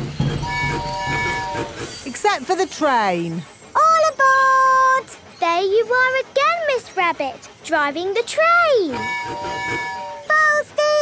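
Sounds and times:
toy steam train whistle: 0:00.3 - 0:02.0, 0:08.4 - 0:11.0.

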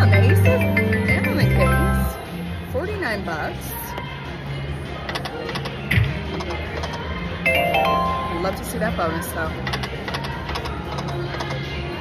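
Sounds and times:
slot machine spin effects: 0:07.4 - 0:08.9.

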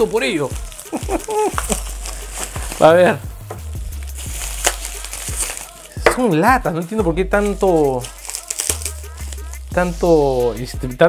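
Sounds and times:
bubble wrap crinkling: 0:00.0 - 0:06.4, 0:07.3 - 0:09.8.

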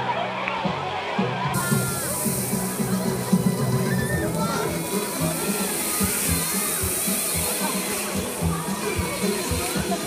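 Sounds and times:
music with bass beat: 0:01.3 - 0:10.0
water jets hissing: 0:01.6 - 0:10.0.

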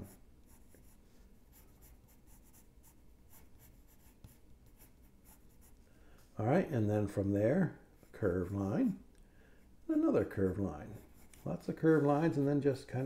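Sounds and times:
pencil scratching on paper: 0:00.0 - 0:05.8, 0:10.2 - 0:13.0.

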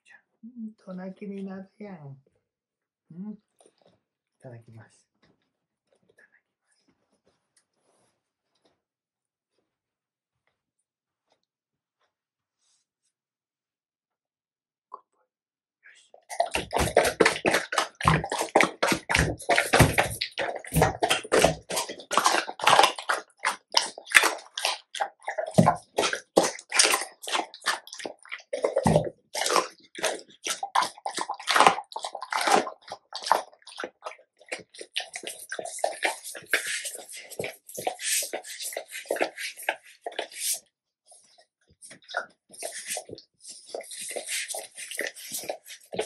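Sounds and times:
dog chewing and slurping: 0:16.1 - 0:46.0
dog tongue lapping table: 0:16.1 - 0:46.0.

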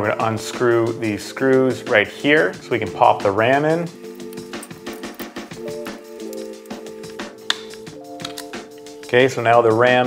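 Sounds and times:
background music with held chords: 0:00.0 - 0:10.0
small parts clicking and tapping: 0:04.2 - 0:08.5.

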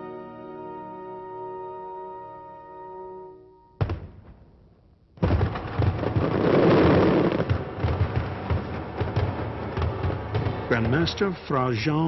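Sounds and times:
barrage of bangs and crackling: 0:05.2 - 0:12.0.

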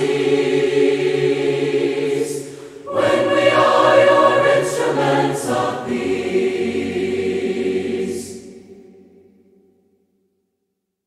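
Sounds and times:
choir singing a hymn: 0:00.0 - 0:09.6.

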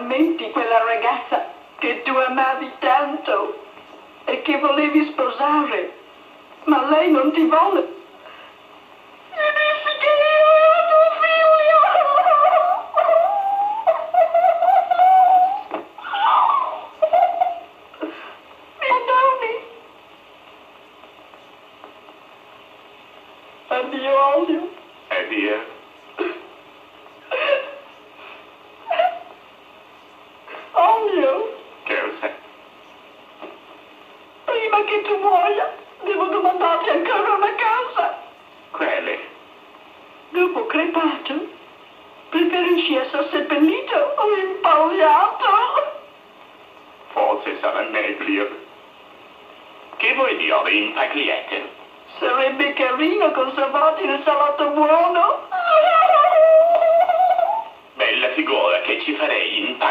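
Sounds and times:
film soundtrack hiss: 0:00.0 - 0:59.9.

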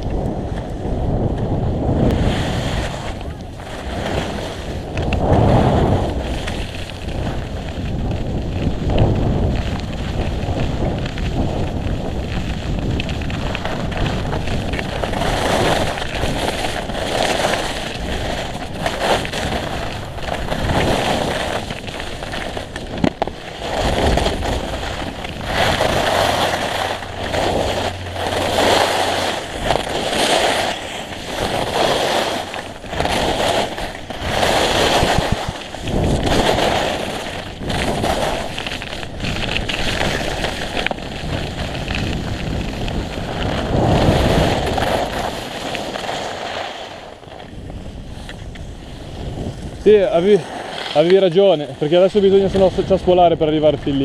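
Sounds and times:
skis scraping over snow: 0:00.0 - 0:54.0
wind rumble on microphone: 0:00.0 - 0:54.0.

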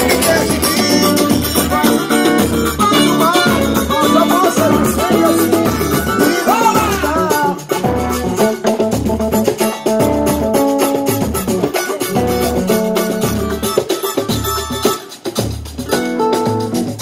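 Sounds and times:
samba band playing: 0:00.0 - 0:17.0.

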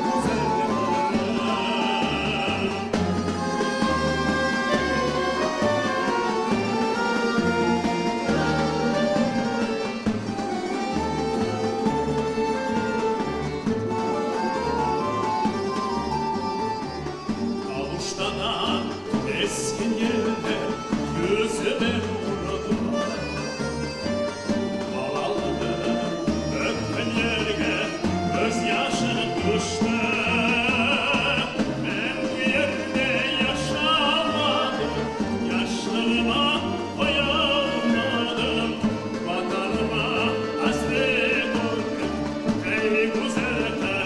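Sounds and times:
man singing: 0:00.0 - 0:10.0, 0:17.6 - 0:23.5, 0:24.8 - 0:44.0
clarinet: 0:00.0 - 0:44.0.

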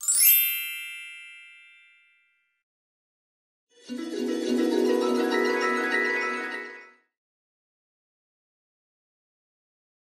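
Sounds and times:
metallic bell chime ringing: 0:00.0 - 0:02.4.

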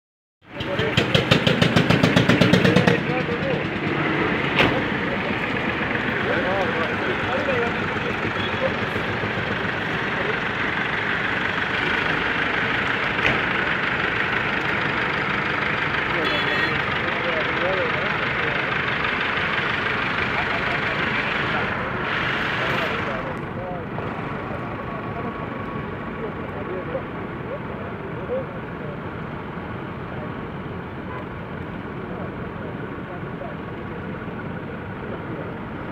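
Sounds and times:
tractor engines running: 0:00.4 - 0:35.9
fast pulsing engine beat: 0:00.5 - 0:25.8
voices chattering: 0:00.5 - 0:35.9.

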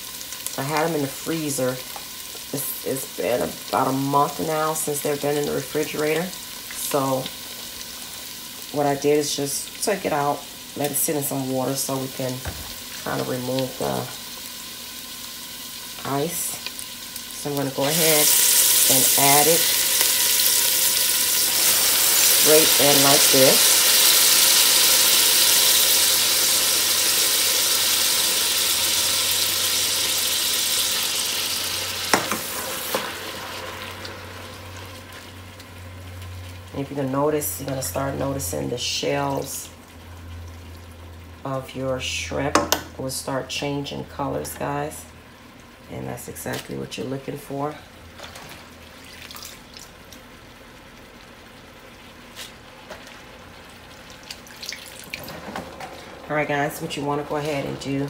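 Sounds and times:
shrimp shells sizzling in oil: 0:00.0 - 0:38.7.

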